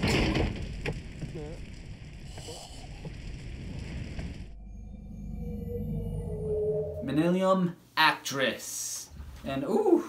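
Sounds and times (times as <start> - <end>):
fire burning: 0.0 - 5.9
low hum: 1.0 - 7.5
film music: 4.6 - 7.3.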